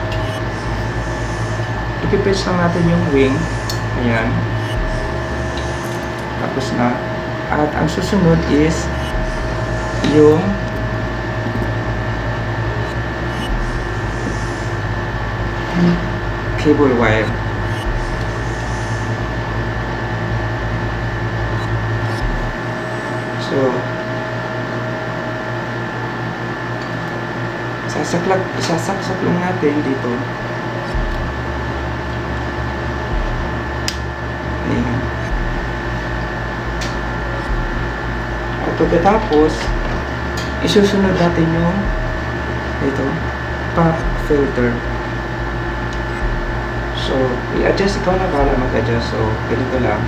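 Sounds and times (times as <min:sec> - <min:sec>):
low steady tones: 0:00.0 - 0:25.8, 0:27.9 - 0:50.0
steady hum and hiss: 0:00.0 - 0:50.0.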